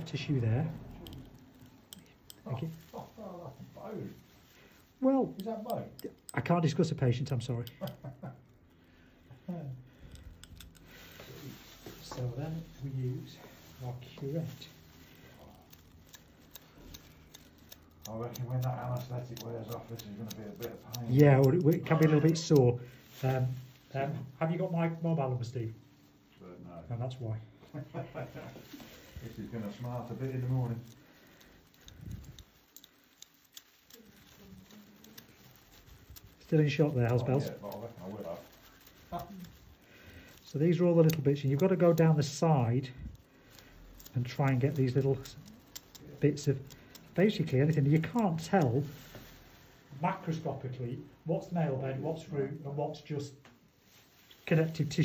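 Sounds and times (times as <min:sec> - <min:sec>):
metal surgical instruments clicking: 0:00.0 - 0:03.0, 0:05.3 - 0:08.2, 0:09.9 - 0:11.1, 0:15.3 - 0:23.4, 0:28.6 - 0:48.9.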